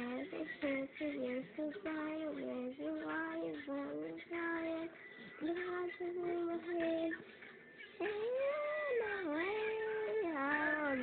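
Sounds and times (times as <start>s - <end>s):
young child singing: 0.0s - 7.2s, 8.0s - 11.0s.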